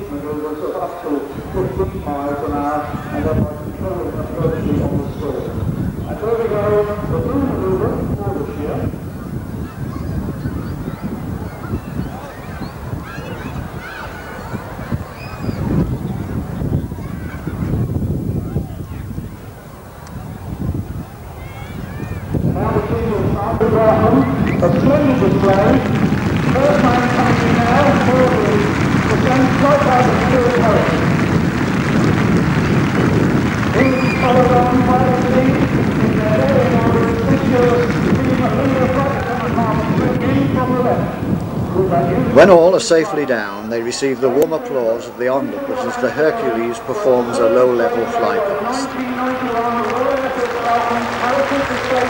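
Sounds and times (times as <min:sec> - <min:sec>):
distant indistinct speech: 0:00.0 - 0:52.0
steady outdoor rushing noise: 0:00.0 - 0:52.0
wind buffeting microphone: 0:00.0 - 0:52.0.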